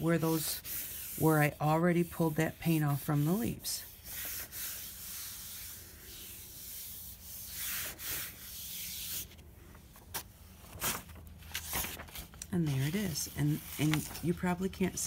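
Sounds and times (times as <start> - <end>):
palm swishing over paper: 0.0 - 15.0
paper crackles: 8.8 - 15.0.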